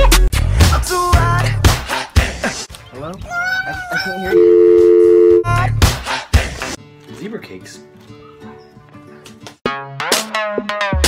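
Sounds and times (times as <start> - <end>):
telephone dial tone: 4.4 - 5.4.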